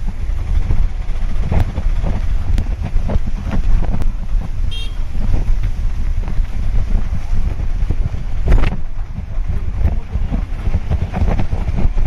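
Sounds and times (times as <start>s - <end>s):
rain and wind on microphone: 0.0s - 12.0s
high-pitched horn toot: 4.7s - 5.1s.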